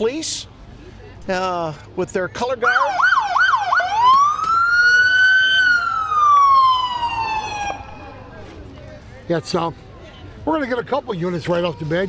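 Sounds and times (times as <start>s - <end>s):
police car siren yelping and wailing: 2.6s - 8.2s.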